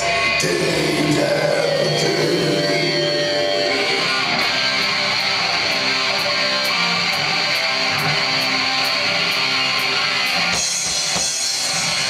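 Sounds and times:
loud electric guitars: 0.0 - 12.0
metal band playing: 0.0 - 12.0
singer's voice over pa: 0.2 - 4.4.

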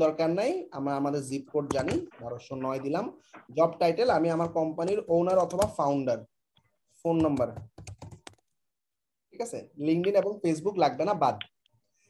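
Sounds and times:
man speaking: 0.0 - 6.3, 9.3 - 11.5.

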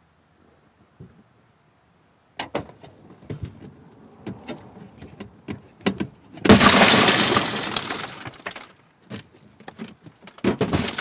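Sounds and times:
car window glass shattering: 6.4 - 8.7, 10.4 - 11.0.

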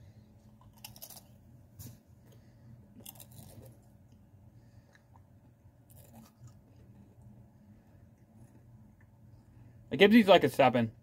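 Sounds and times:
low steady hum: 0.0 - 11.0
crisps being chewed: 0.4 - 7.4.

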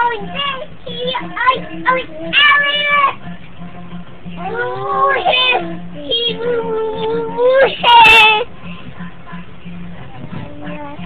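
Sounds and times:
small children vocalising: 0.0 - 3.2, 4.4 - 8.5.

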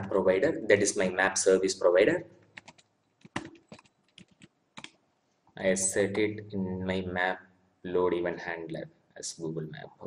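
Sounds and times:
keyboard typing: 2.4 - 5.0.

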